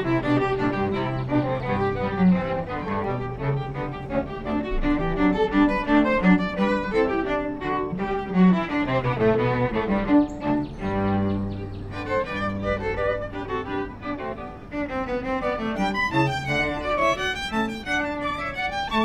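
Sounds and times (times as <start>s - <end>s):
string quartet playing: 0.0s - 19.0s.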